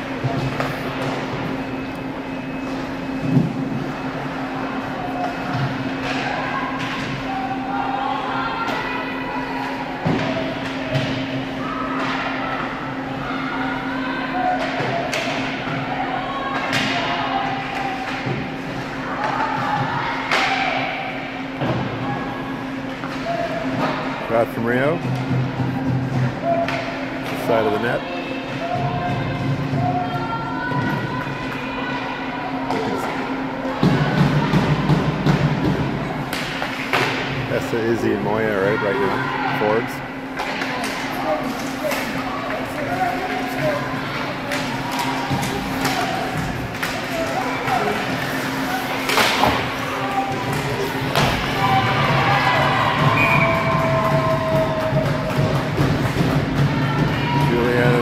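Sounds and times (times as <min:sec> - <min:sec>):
hockey sticks and puck knocking: 0:33.8 - 0:37.4, 0:40.4 - 0:57.5.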